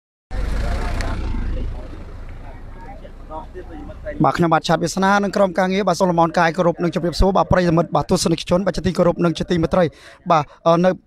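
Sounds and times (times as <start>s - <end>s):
deep vehicle rumble: 0.3s - 4.3s
voices: 0.3s - 11.0s.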